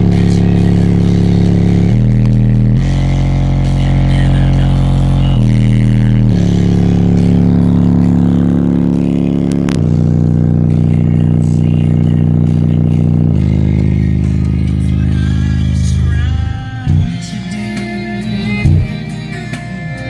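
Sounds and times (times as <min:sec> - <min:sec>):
subwoofers playing deep bass notes: 0:00.0 - 0:20.0.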